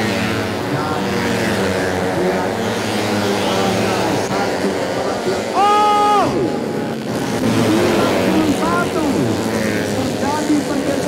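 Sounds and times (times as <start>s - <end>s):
motorcycles passing at high revs: 0.0s - 11.0s.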